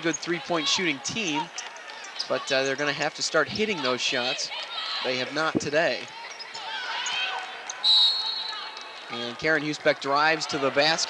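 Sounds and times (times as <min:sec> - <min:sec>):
referee's whistle blast: 0:07.8 - 0:08.6.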